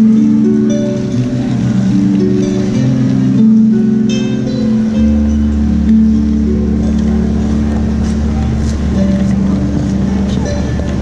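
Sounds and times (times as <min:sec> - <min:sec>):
harp notes ringing: 0:00.0 - 0:11.0
voices of passersby: 0:00.0 - 0:11.0.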